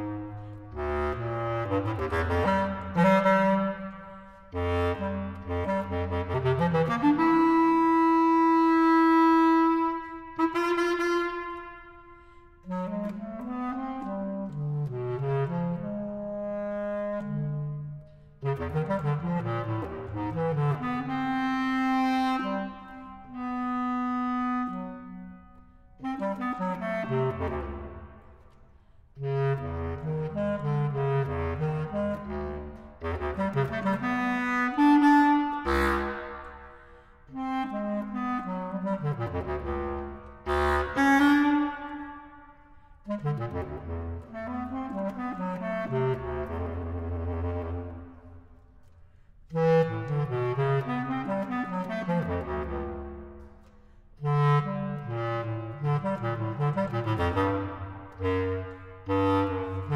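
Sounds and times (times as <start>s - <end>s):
bass clarinet music: 0.0s - 59.9s.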